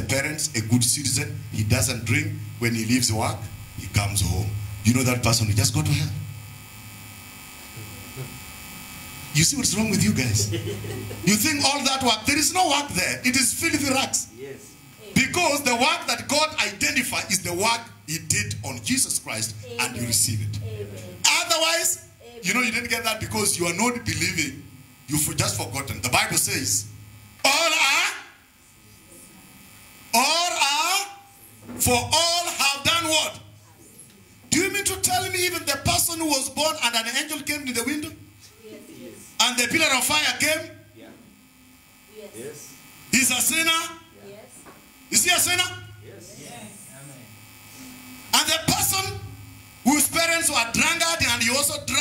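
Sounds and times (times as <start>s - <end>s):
man speaking into microphone: 0.0s - 6.2s, 9.3s - 28.4s, 30.2s - 33.6s, 34.5s - 38.3s, 39.4s - 41.2s, 42.4s - 44.1s, 45.1s - 47.3s, 48.3s - 52.0s
low electrical mains hum: 0.0s - 52.0s
spoken word: 42.3s - 42.7s.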